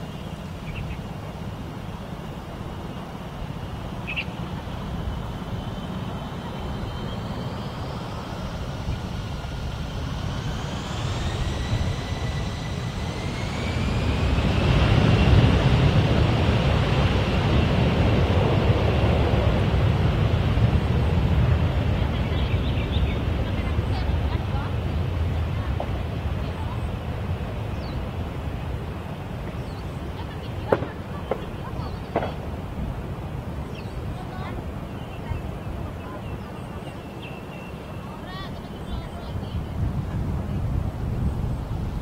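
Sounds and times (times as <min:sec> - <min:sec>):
jet engines spooling up: 0:00.0 - 0:42.0.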